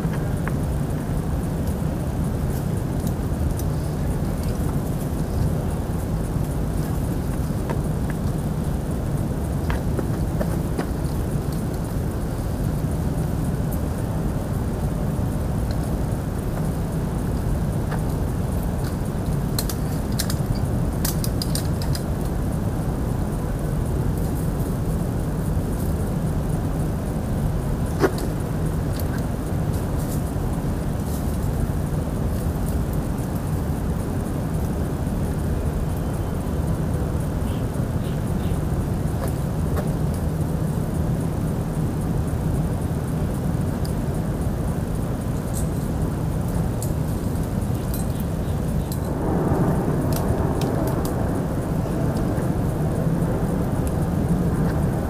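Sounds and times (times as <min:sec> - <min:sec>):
low background rumble: 0:00.0 - 0:55.0.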